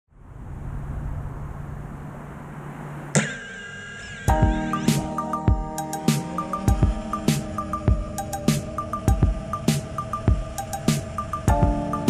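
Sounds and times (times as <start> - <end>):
loud sustained gliding tones: 0.2 - 12.0
drone motors humming: 0.3 - 12.0.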